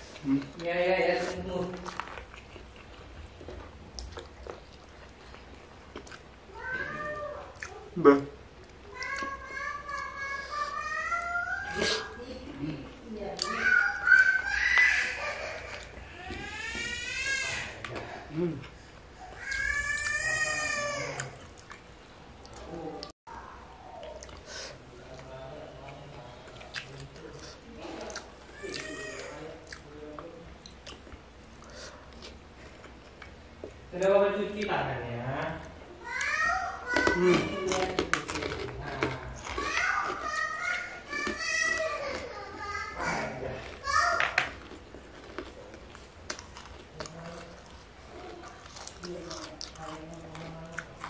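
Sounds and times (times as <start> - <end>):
cat meowing: 6.6 - 7.5
wet chewing mouth clicks: 7.6 - 7.8
children's voices: 8.9 - 12.2, 36.0 - 38.0, 39.4 - 44.5
man humming: 18.3 - 18.7.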